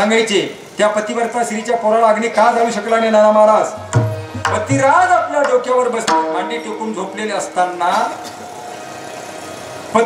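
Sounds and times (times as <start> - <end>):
sung note echo: 3.7 - 9.3.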